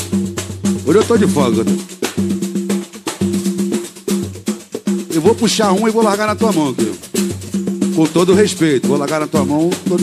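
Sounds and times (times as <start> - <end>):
live band instrumental groove: 0.0 - 10.0.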